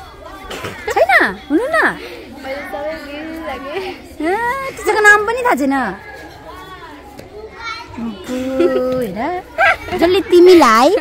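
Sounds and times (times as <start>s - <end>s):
faint children's voices: 0.0s - 11.0s.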